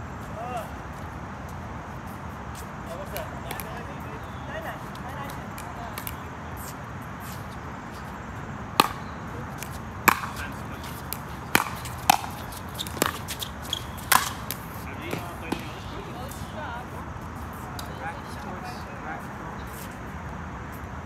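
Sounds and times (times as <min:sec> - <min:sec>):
paddles hitting plastic ball: 0:08.8 - 0:09.0, 0:09.6 - 0:15.8.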